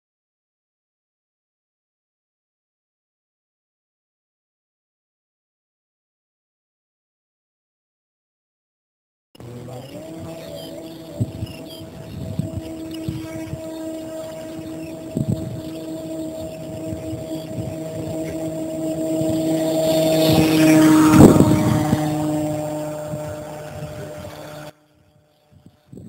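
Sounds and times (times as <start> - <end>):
model plane engine running: 9.4 - 26.0.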